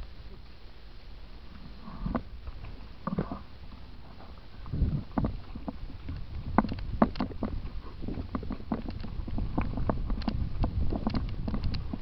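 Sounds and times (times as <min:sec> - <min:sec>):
mountain bike on rocky trail: 0:04.1 - 0:12.0.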